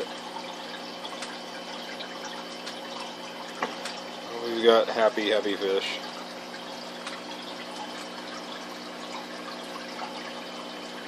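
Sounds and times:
aquarium filter hum: 0:00.0 - 0:11.0
water trickling into tank: 0:00.0 - 0:11.0.

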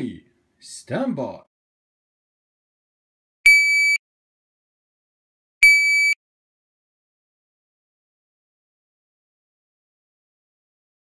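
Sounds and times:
shot timer beep: 0:03.5 - 0:04.0, 0:05.6 - 0:06.2.

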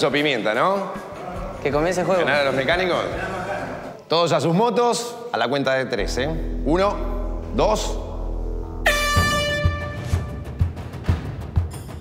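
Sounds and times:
air horn blast: 0:08.7 - 0:10.5
background music with drum beats: 0:08.8 - 0:12.0.

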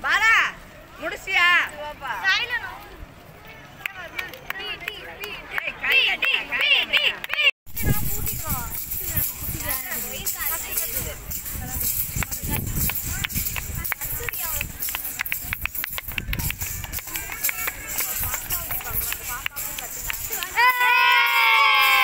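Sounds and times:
steady low rumble: 0:07.7 - 0:20.4
spectators' voices and shouts: 0:16.6 - 0:22.0.

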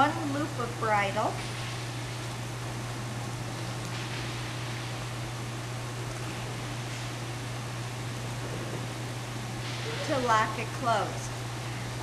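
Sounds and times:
constant low hum: 0:00.0 - 0:12.0
steady hiss: 0:08.2 - 0:10.8.

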